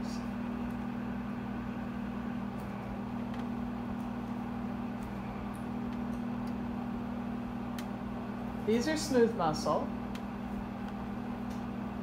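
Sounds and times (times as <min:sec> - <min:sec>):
projector cooling fan humming: 0:00.0 - 0:12.0.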